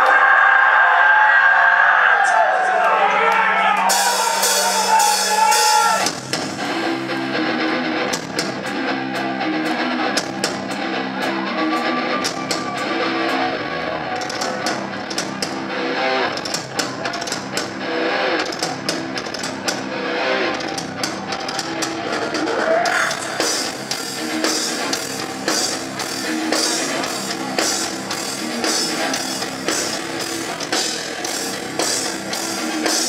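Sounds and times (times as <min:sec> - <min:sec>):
heavy rock band playing: 0:03.6 - 0:33.0
distorted electric guitar riff: 0:03.8 - 0:33.0.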